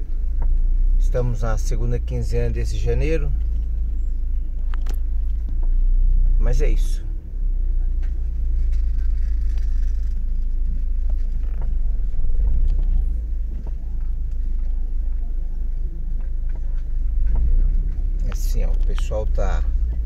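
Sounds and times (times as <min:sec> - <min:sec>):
low street rumble: 0:00.0 - 0:20.0
faint chatter of shoppers: 0:07.4 - 0:20.0.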